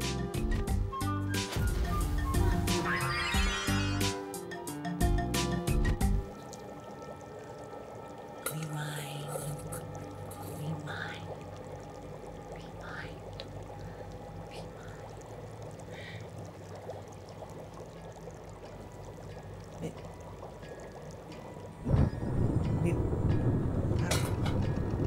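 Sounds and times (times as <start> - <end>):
background music drone: 0.0 - 25.0
liquid pouring and bubbling: 0.4 - 25.0
soft whispering: 8.4 - 11.4, 12.4 - 15.3.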